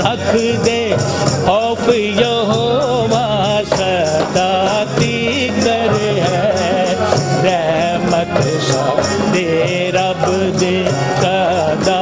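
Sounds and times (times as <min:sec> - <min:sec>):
devotional music: 0:00.0 - 0:12.0
hand percussion with jingling: 0:00.0 - 0:12.0.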